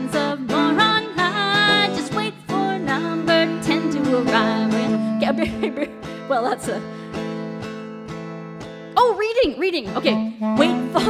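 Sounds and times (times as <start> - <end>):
woman singing: 0.0 - 6.9, 9.0 - 11.0
acoustic guitar strumming: 0.0 - 11.0
clarinet: 0.2 - 6.4, 9.9 - 11.0.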